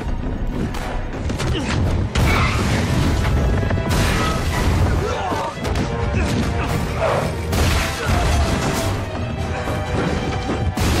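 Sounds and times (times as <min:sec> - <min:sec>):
dramatic film score: 0:00.0 - 0:11.0.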